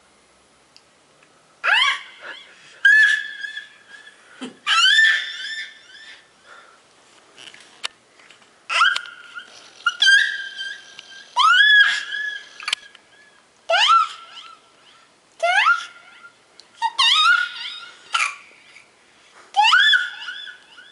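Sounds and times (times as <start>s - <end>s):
baby squealing with echo: 1.6s - 6.3s, 8.7s - 18.4s, 19.6s - 20.9s.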